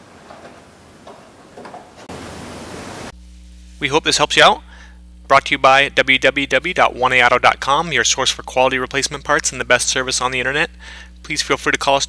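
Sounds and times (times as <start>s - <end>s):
steady hiss: 2.0s - 6.6s
man speaking: 3.8s - 4.7s, 5.3s - 12.0s.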